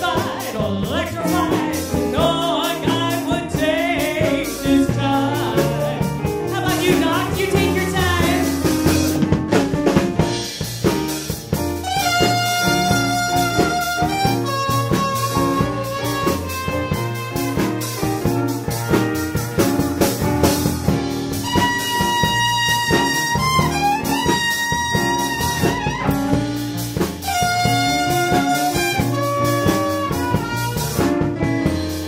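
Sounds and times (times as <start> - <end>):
bass line: 0.0 - 32.0
drum kit with cymbals: 0.0 - 32.0
trumpet solo: 11.7 - 31.4.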